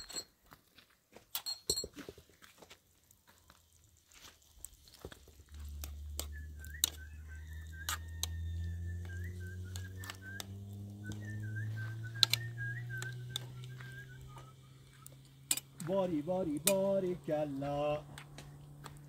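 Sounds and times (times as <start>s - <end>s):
low rising hum: 5.3s - 19.0s
thin wavering whistle: 5.9s - 15.3s.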